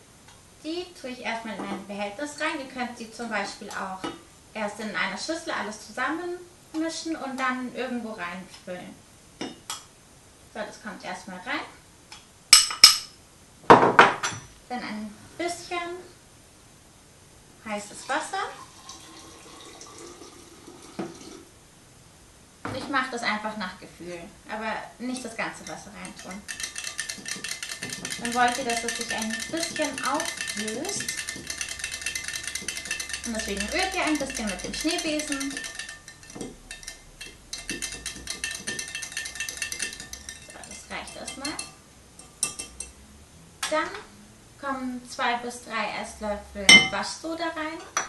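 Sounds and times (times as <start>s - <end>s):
hot water pouring into glass jug: 17.9s - 21.5s
whisk clinking against glass: 25.1s - 42.9s.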